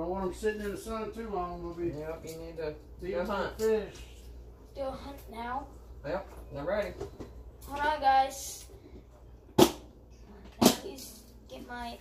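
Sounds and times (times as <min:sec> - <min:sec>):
sharp knocks on hard surface: 0:09.6 - 0:09.9.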